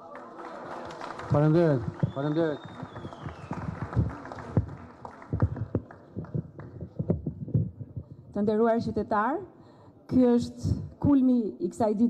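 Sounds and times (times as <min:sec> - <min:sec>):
knocks and footsteps: 0:05.4 - 0:08.1.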